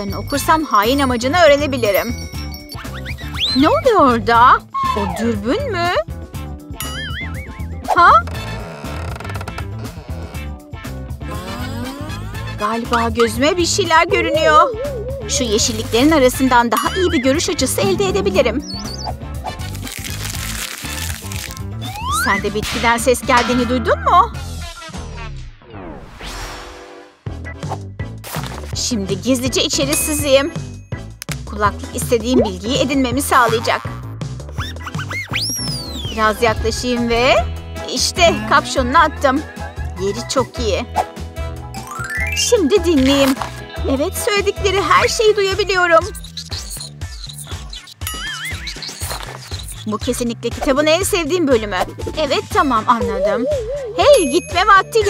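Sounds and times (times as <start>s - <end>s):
background music with bass: 1.0s - 25.6s, 30.5s - 55.0s
warbling whinny sound effect: 14.3s - 15.3s
plant leaves rustling: 19.7s - 21.9s.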